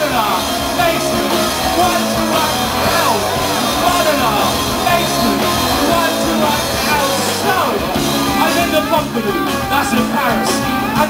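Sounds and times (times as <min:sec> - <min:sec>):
live band with guitar: 0:00.0 - 0:11.0
man singing into microphone: 0:00.0 - 0:11.0.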